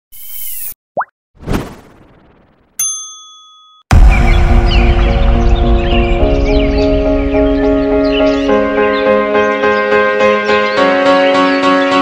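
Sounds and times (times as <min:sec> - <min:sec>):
quick rising pop: 0:01.0 - 0:02.5
bright bell-like ding: 0:02.8 - 0:03.9
music: 0:03.9 - 0:12.0.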